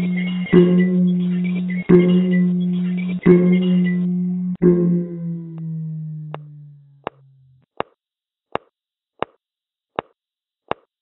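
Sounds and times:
low held musical note: 0.0s - 7.5s.

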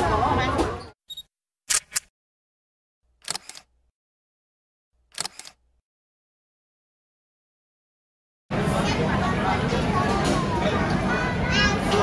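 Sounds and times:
public-space chatter: 0.0s - 1.0s, 8.5s - 12.0s
camera shutter clicks: 1.7s - 2.1s, 3.2s - 3.7s, 5.1s - 5.6s.

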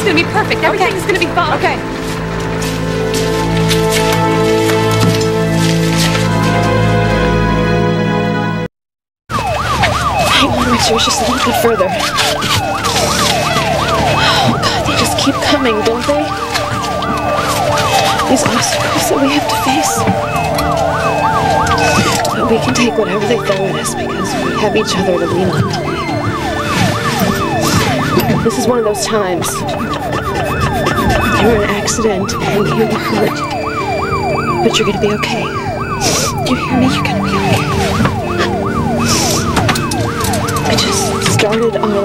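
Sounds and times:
ambulance siren yelping: 0.0s - 7.4s, 9.3s - 42.0s.

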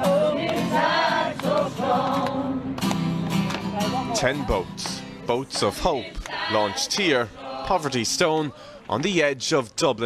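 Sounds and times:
choir singing: 0.0s - 2.8s, 5.3s - 8.7s.

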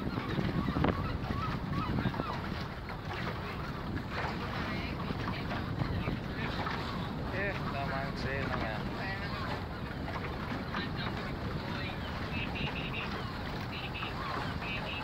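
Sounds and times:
wind rumbling on microphone: 0.0s - 15.0s.

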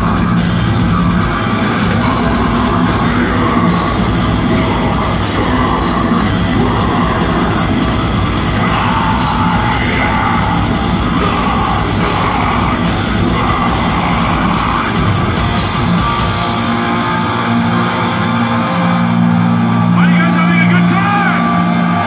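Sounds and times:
live heavy metal band: 0.0s - 22.0s.

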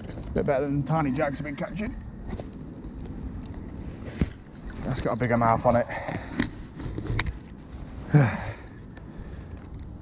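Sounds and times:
man sighing: 8.0s - 8.8s.

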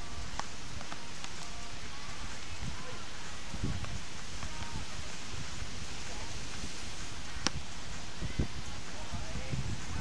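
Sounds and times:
surf hissing: 0.0s - 10.0s
wind: 0.0s - 10.0s.

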